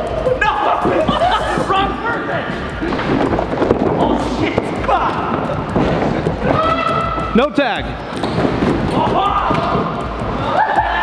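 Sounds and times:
people shouting: 0:00.0 - 0:02.0, 0:04.0 - 0:05.8, 0:06.4 - 0:07.5, 0:08.8 - 0:11.0
running footsteps on padded floor: 0:02.5 - 0:11.0.

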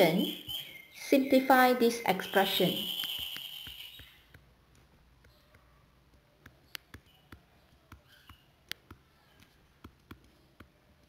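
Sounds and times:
stylus tapping on tablet screen: 0:03.0 - 0:11.0.

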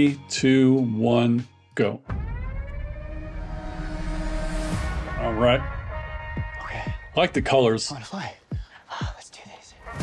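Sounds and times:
quiet music bed: 0:00.0 - 0:10.0
whispered speech: 0:08.2 - 0:09.8.

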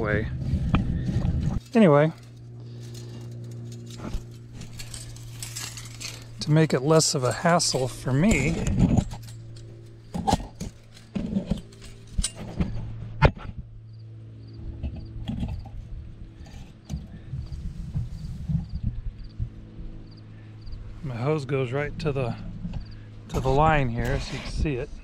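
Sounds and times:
low hum: 0:00.0 - 0:25.0
rustling of wire in branches: 0:01.4 - 0:12.9.

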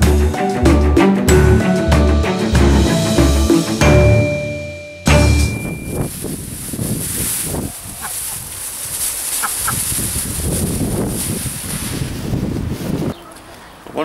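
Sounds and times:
plastic bag rustling: 0:05.2 - 0:13.2
chickens clucking: 0:07.6 - 0:08.6, 0:09.2 - 0:10.1.

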